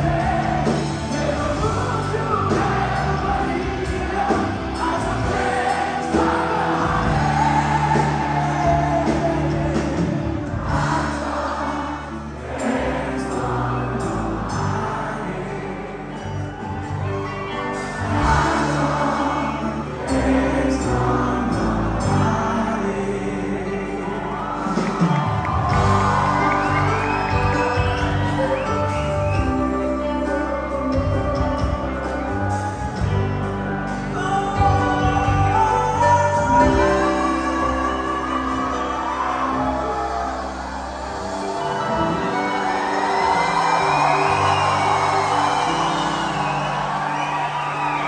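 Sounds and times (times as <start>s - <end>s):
bass notes: 0.0s - 48.0s
crowd cheering and shouting: 0.0s - 48.0s
rock band playing live: 0.0s - 48.0s.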